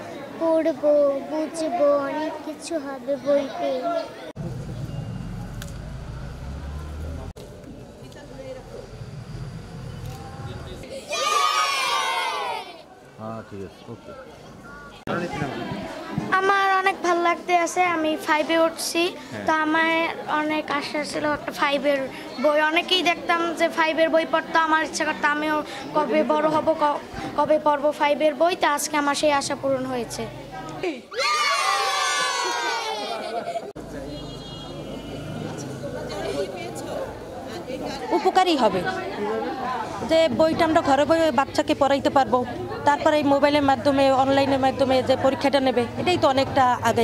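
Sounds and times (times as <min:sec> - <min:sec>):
murmur of people: 0:00.0 - 0:47.0
children cheering: 0:11.0 - 0:12.8, 0:31.1 - 0:33.4.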